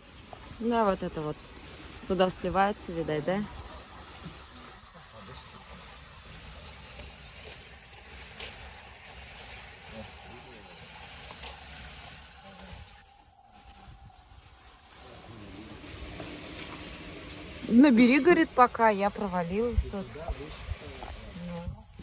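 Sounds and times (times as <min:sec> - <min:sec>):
water running over pebbles: 0:00.0 - 0:22.0.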